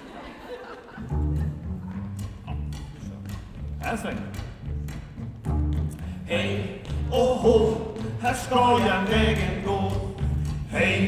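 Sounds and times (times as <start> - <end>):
plucked double bass line: 1.0 - 11.0.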